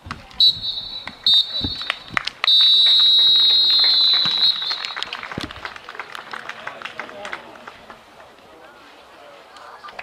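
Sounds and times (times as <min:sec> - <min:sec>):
referee's whistle blasts: 0:00.4 - 0:05.2.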